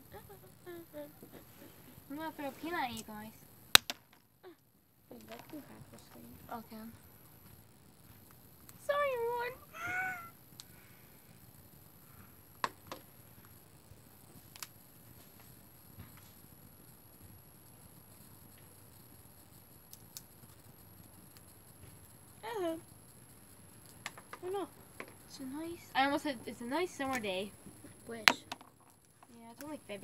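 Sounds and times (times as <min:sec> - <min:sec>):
high wavering meow-like calls: 0:09.6 - 0:10.4.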